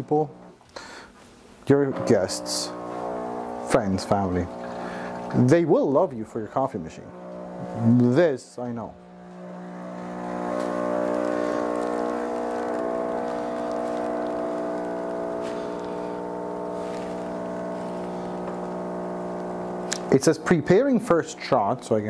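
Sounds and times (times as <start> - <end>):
espresso machine pump humming: 1.7 - 5.8, 7.0 - 21.9
espresso pouring into cups: 1.9 - 5.6, 7.1 - 8.3, 9.0 - 21.8.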